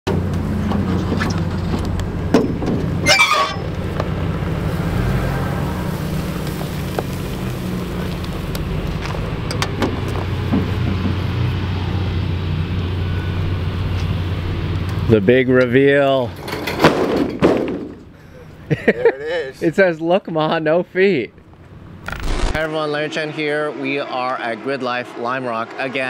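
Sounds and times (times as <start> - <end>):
low engine-like drone: 7.6 - 15.2.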